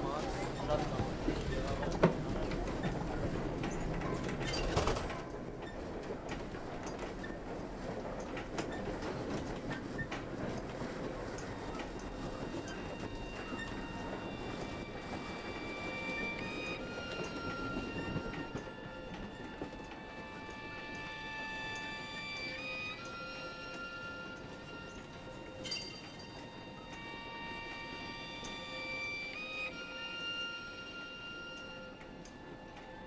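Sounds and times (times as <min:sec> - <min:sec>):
train carriage rumble: 0:00.0 - 0:33.0
train wheels clattering: 0:00.0 - 0:33.0.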